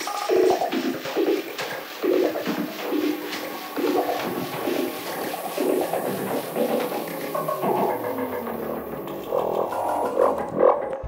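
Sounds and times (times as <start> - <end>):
swelling synth sounds: 0.0 - 11.0.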